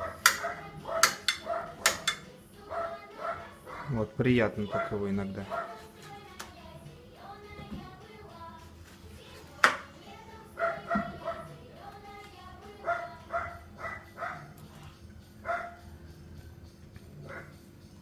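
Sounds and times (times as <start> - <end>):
children's song playing quietly: 0.0 - 18.0.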